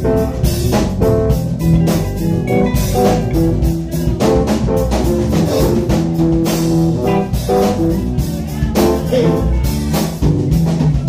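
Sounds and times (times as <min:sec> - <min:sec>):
bass guitar: 0:00.0 - 0:11.0
drum beat: 0:00.0 - 0:11.0
keyboards: 0:00.0 - 0:11.0.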